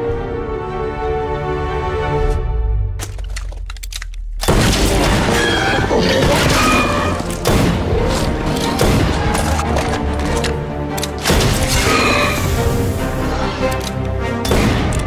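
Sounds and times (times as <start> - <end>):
dramatic film score: 0.0 - 15.0.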